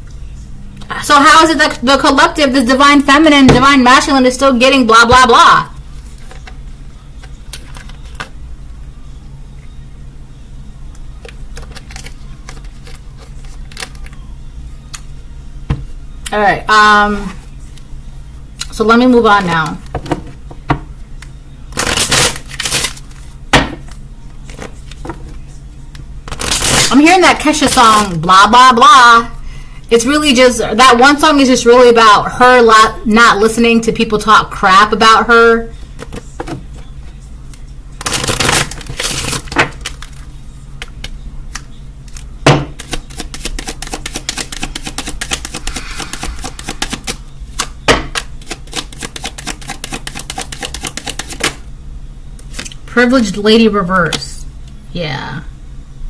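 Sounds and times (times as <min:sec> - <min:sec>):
cards shuffling: 0:07.2 - 0:08.3, 0:11.2 - 0:14.2, 0:21.7 - 0:23.3, 0:38.0 - 0:51.6, 0:52.5 - 0:52.8.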